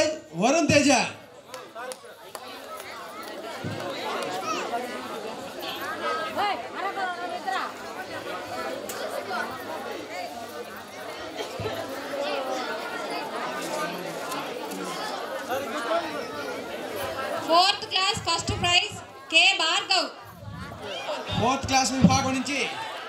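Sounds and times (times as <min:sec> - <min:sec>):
many voices chattering: 0:00.0 - 0:23.0.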